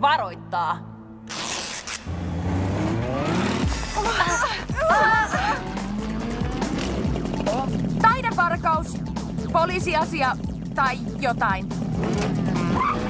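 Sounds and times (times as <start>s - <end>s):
background music: 0.0s - 13.0s
cartoon scooter engines revving: 2.1s - 8.5s, 11.2s - 13.0s.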